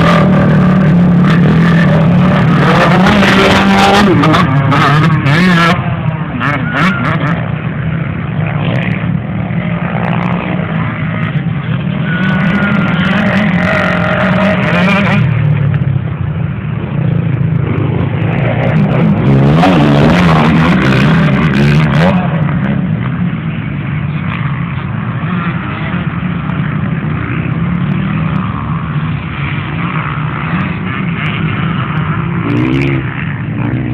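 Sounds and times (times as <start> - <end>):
motorcycle engines revving: 0.0 - 33.9.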